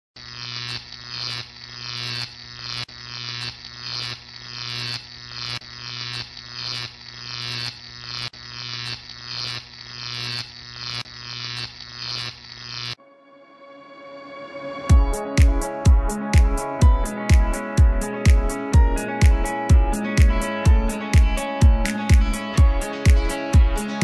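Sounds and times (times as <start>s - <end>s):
pulsing electronic buzzing: 0.2s - 24.0s.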